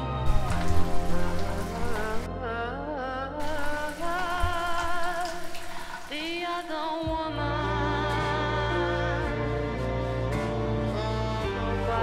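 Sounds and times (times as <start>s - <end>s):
slow song with wavering voice: 0.0s - 12.0s
shower water spraying: 0.2s - 2.3s, 3.4s - 7.1s.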